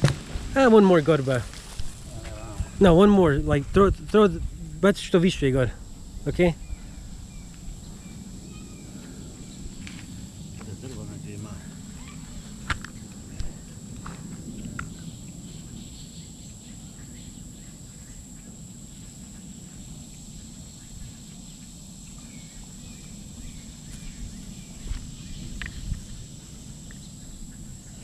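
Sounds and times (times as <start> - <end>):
high-pitched insect drone: 0.6 - 28.0.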